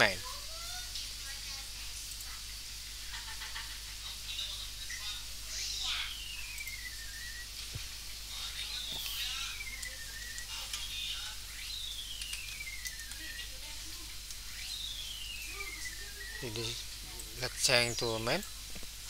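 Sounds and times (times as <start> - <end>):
faint steady hum: 0.0 - 19.0
bird whistling descending call: 6.1 - 7.5.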